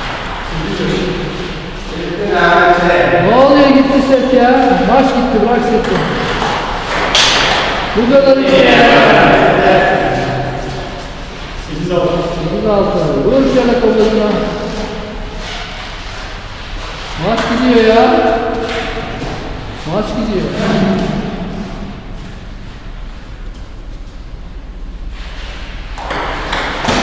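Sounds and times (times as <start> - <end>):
table tennis ball hits: 5.7 - 8.7, 18.5 - 19.5, 26.0 - 27.0.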